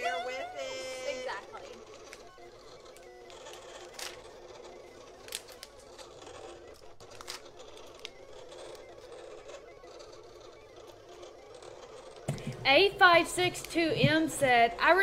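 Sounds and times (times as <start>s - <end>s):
low steady room hum: 0.0s - 15.0s
vinyl sheet rustling and crinkling: 0.0s - 15.0s.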